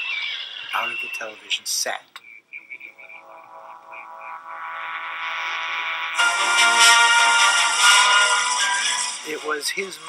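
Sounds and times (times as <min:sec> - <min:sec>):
electronic drone of held tones: 0:00.0 - 0:09.6
high warbling blips: 0:02.2 - 0:06.7.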